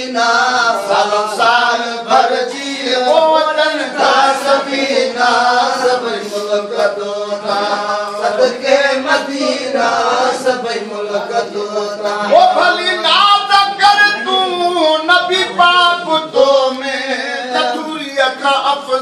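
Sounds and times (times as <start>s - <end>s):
voices singing a chant: 0.0s - 19.0s.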